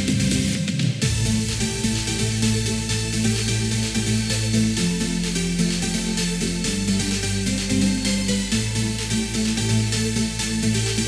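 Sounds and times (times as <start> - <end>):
electronic music with steady beat: 0.0 - 11.0.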